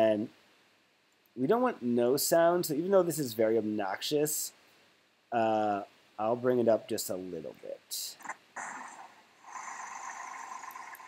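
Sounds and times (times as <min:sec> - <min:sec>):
outdoor ambient hiss: 0:00.0 - 0:11.0.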